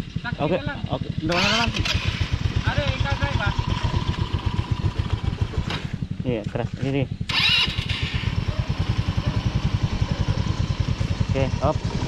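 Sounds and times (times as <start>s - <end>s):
atv engine throbbing: 0.0s - 12.0s.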